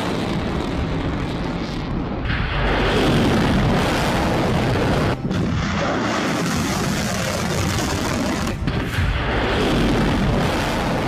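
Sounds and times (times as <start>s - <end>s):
artillery fire and explosions: 0.0s - 11.0s.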